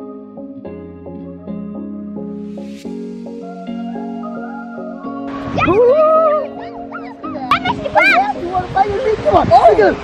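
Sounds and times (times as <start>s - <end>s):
background music: 0.0s - 9.6s.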